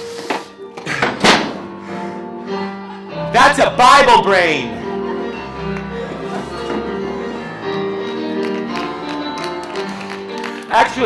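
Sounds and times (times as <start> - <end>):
background music with held tones: 0.0 - 11.0.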